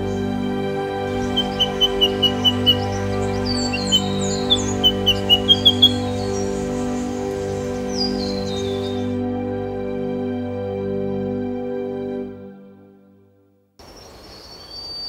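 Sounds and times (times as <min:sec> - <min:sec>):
soft background music: 0:00.0 - 0:13.6
bird piping calls: 0:01.0 - 0:09.2.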